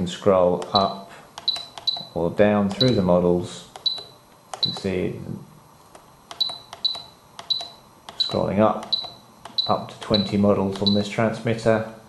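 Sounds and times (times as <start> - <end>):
transmitter key clicks: 0.6 - 3.1, 3.7 - 4.9, 5.9 - 11.0
short high beeps: 6.4 - 11.0.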